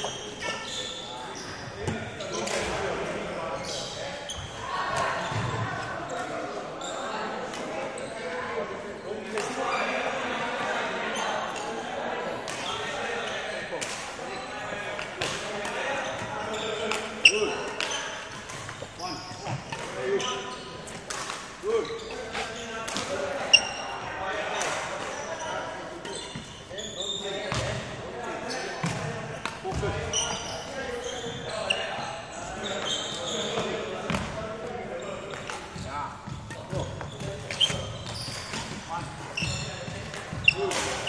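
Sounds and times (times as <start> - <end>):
sneaker squeaks: 0.0 - 8.4, 9.0 - 10.1, 12.5 - 41.0
racket hitting shuttlecock: 2.3 - 2.8, 15.0 - 18.9, 19.5 - 21.6, 22.2 - 23.8, 35.3 - 38.9, 39.9 - 41.0.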